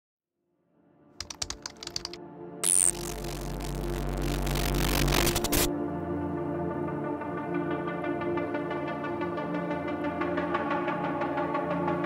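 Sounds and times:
sharp digital clicks: 1.2s - 5.7s.

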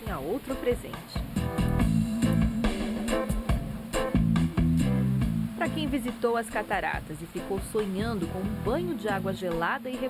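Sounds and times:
guitar music with bass line: 1.2s - 6.0s.

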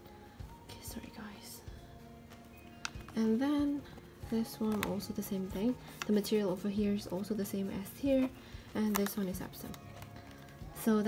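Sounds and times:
faint background music: 0.0s - 11.0s
leather wallet rustling: 2.3s - 11.0s.

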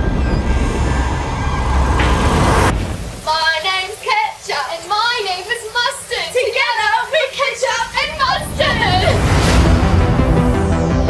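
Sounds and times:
deep rumble: 0.0s - 3.3s, 8.4s - 11.0s
heavy rain pouring: 0.0s - 11.0s.

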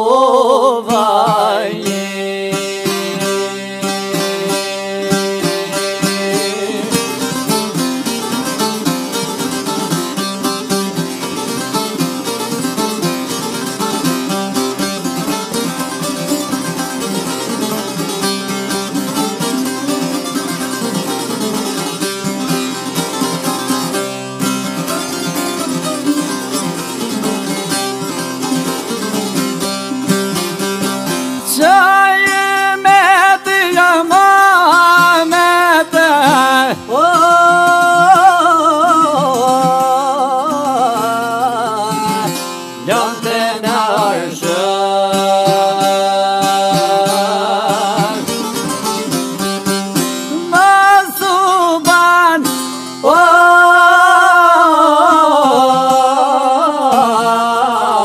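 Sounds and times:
plucked lute melody: 0.0s - 58.0s.

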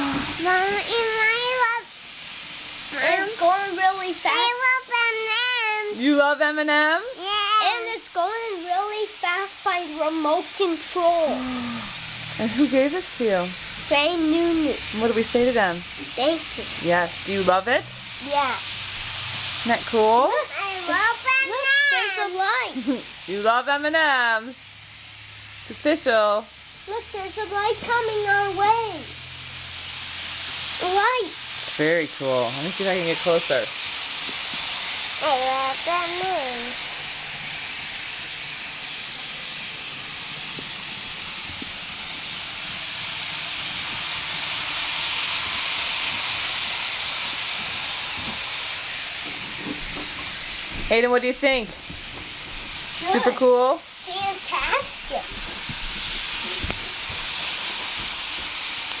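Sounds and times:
toy train running on track: 0.0s - 59.0s.

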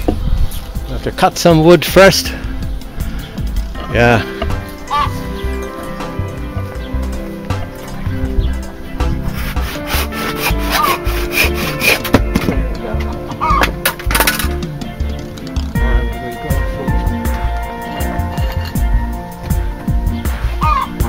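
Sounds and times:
background music: 0.0s - 21.0s
hand saw cutting log: 9.2s - 12.3s.

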